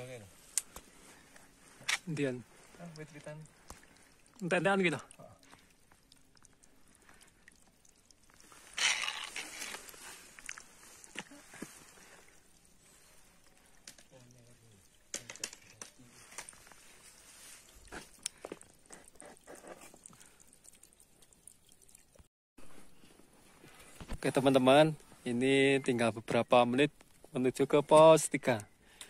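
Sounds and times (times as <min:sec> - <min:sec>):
rustling: 0:08.2 - 0:20.4.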